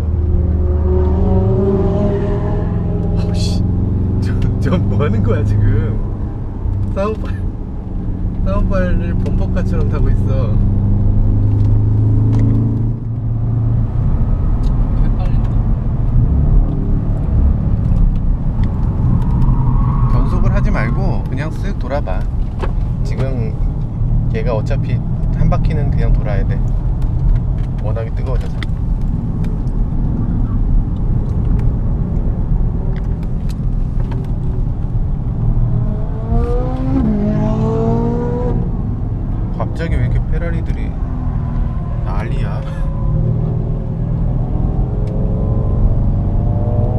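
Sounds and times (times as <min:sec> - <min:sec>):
car engine under hard driving: 0:00.0 - 0:46.9
road and tyre noise: 0:00.0 - 0:46.9.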